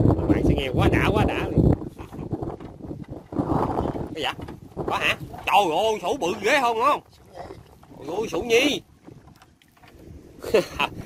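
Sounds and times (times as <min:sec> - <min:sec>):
wind and water noise: 0:00.0 - 0:11.0.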